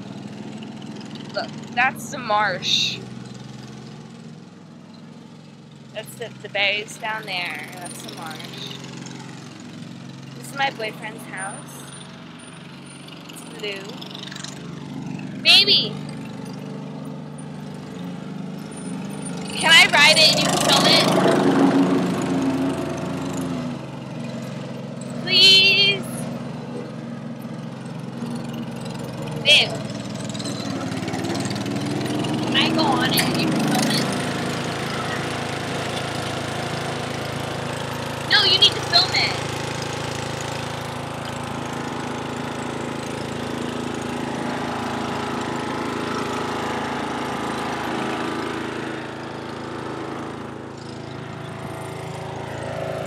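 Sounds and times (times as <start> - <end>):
riding lawn mower engine humming: 0.0 - 53.0.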